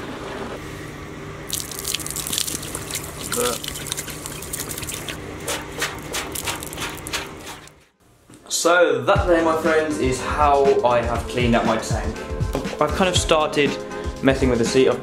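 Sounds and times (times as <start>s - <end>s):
water splashing onto concrete: 1.5s - 5.2s.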